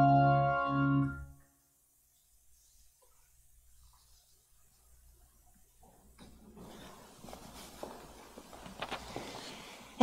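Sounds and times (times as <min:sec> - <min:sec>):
faint footsteps: 0:05.4 - 0:09.9.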